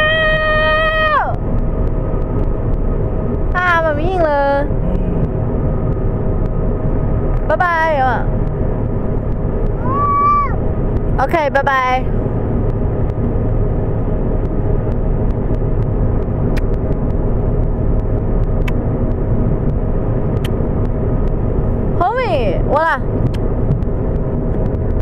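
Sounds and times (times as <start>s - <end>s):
car cabin road noise: 0.0s - 25.0s
child's high-pitched vocal sounds: 9.8s - 10.6s.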